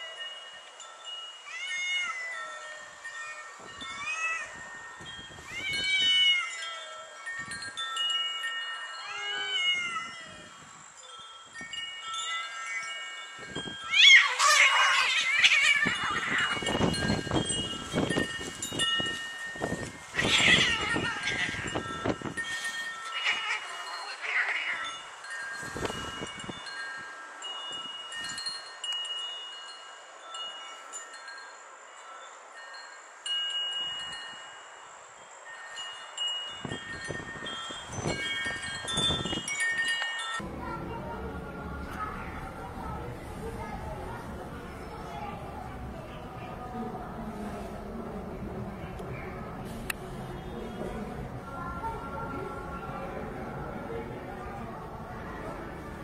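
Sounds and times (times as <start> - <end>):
wind chimes ringing: 0.0 - 47.4, 48.4 - 56.0
cats yowling and screeching: 1.5 - 7.2, 8.8 - 10.7, 12.2 - 12.9, 13.6 - 17.4, 19.6 - 25.2.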